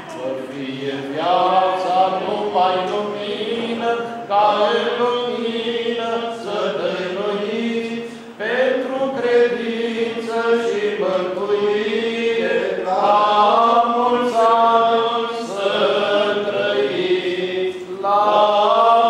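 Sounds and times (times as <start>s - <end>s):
liturgical chant sung in church: 0.0s - 19.0s.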